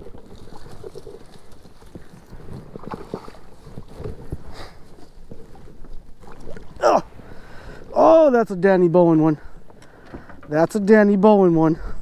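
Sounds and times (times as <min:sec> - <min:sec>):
wind rumble on microphone: 0:00.0 - 0:08.8.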